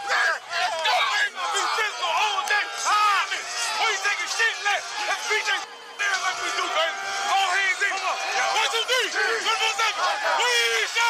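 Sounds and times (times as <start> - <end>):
men shouting together: 0.0 - 5.6, 6.4 - 11.0.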